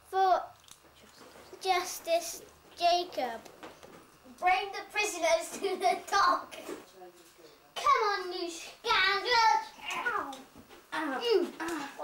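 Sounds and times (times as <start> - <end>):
children talking: 4.3 - 6.7, 7.8 - 12.0.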